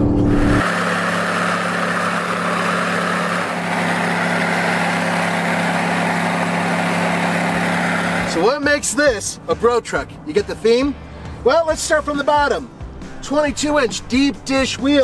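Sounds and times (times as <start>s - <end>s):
engine droning inside cab: 0.0s - 8.6s
passing vehicle engine hum: 0.0s - 11.4s.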